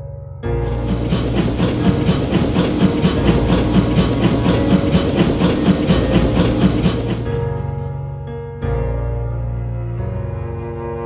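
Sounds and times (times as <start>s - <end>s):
freight train rumble and clatter: 0.6s - 7.9s.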